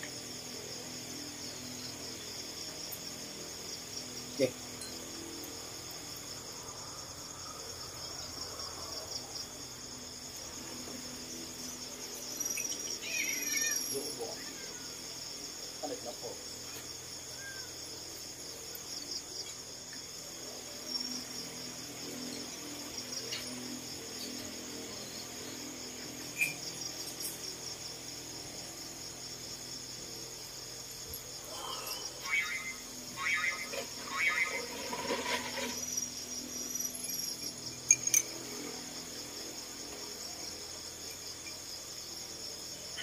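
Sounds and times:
crickets chirping: 0.0s - 43.0s
broken pitched calls: 31.8s - 35.5s.

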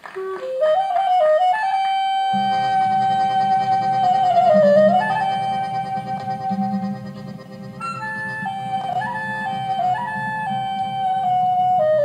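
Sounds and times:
clarinet folk melody: 0.0s - 12.0s
strummed guitar: 2.3s - 12.0s
plucked double bass: 2.4s - 11.5s.

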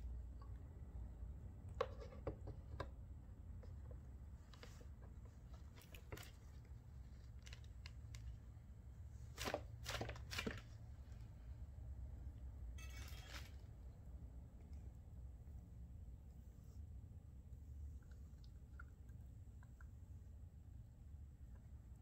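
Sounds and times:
low steady hum: 0.0s - 22.0s.

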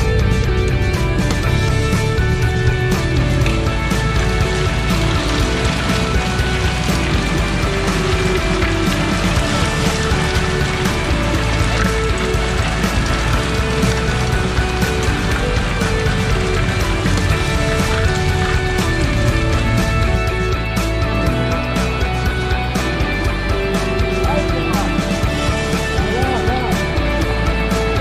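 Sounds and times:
bicycle rattling over cobblestones: 0.0s - 28.0s
upbeat instrumental rock music: 0.0s - 28.0s.

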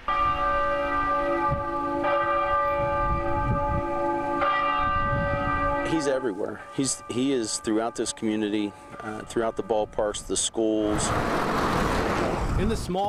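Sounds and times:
large bell tolling: 0.0s - 10.2s.

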